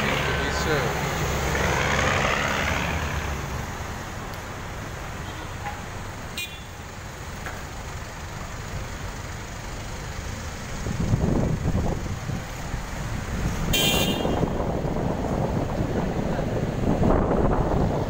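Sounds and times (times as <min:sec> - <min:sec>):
traffic engines rumbling: 0:00.0 - 0:18.0
car horn toot: 0:06.4 - 0:06.8, 0:13.7 - 0:14.6.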